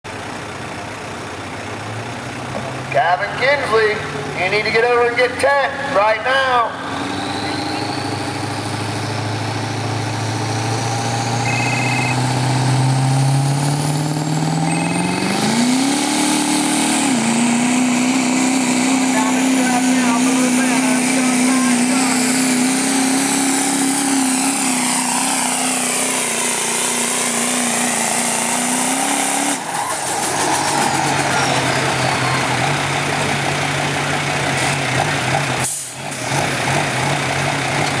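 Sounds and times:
diesel truck engine revving: 0.0 - 38.0.

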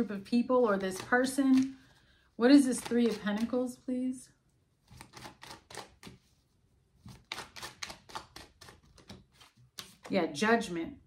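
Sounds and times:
cards being shuffled: 0.7 - 1.9, 2.5 - 3.7, 4.9 - 6.3, 7.0 - 10.1.

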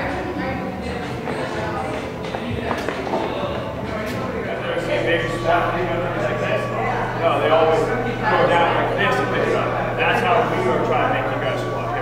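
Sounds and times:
faint music: 0.0 - 12.0
indistinct background voices: 0.0 - 12.0.

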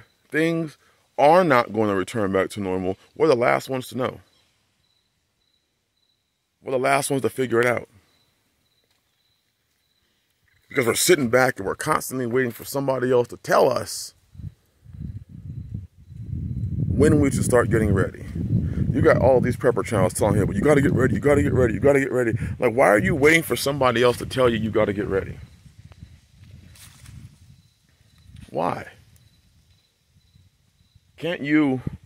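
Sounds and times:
wind buffeting microphone: 14.2 - 32.0.

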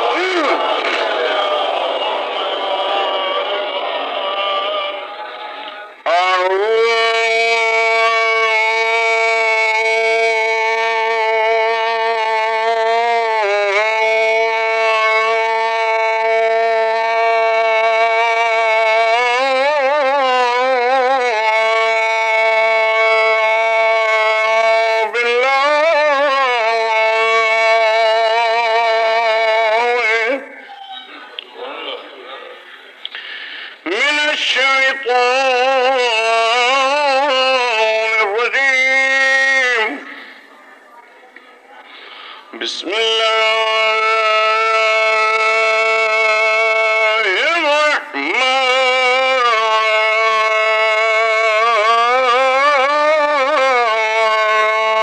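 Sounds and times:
muffled talk: 0.0 - 7.6, 30.2 - 35.0, 38.9 - 43.2
man singing long chanted note: 6.0 - 30.7, 42.5 - 55.0.

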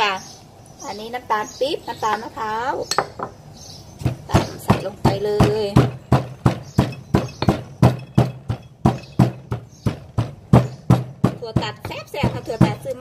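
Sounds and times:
stone pestle pounding in mortar: 4.0 - 13.0.

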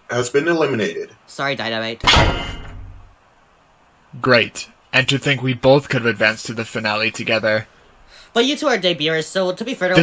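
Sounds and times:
heavy crash: 2.0 - 3.1.

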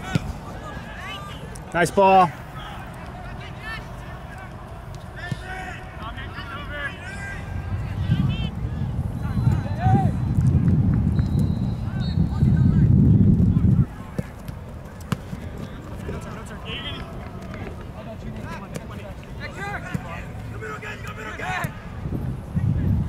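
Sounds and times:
distant shouts: 0.0 - 10.4, 13.8 - 22.0
low microphone rumble: 6.2 - 14.1, 21.8 - 23.0.

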